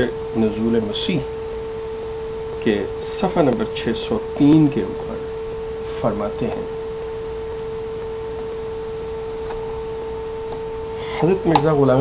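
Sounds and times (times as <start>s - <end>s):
background hiss: 0.0s - 12.0s
steady tonal whine: 0.0s - 12.0s.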